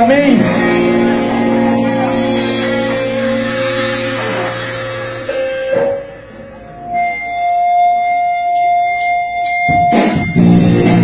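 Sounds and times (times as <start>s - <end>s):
live band playing: 0.0s - 11.0s.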